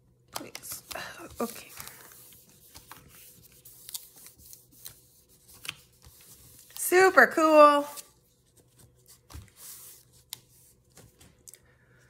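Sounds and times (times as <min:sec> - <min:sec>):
paper rustling: 0:00.4 - 0:07.1, 0:07.8 - 0:11.5.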